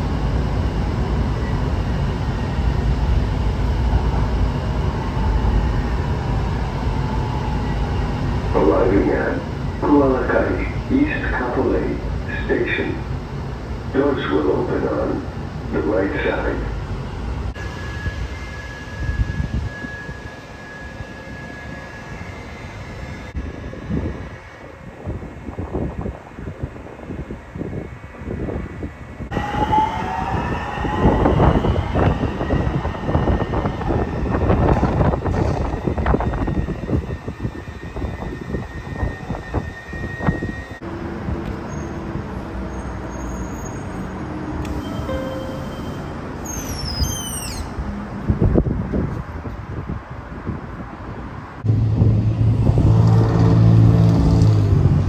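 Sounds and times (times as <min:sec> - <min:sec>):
train motor whine and rolling: 0:16.8 - 0:49.7.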